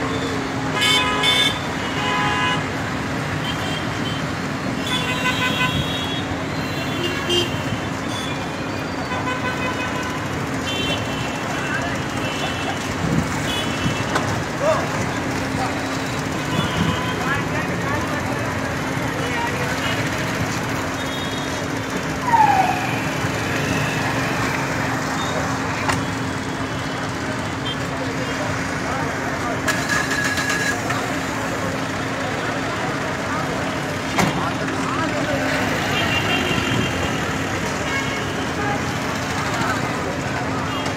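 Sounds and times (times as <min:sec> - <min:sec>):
road traffic: 0:00.0 - 0:40.9
vehicle horn: 0:00.7 - 0:02.7, 0:04.8 - 0:08.4
crowd talking: 0:09.9 - 0:40.9.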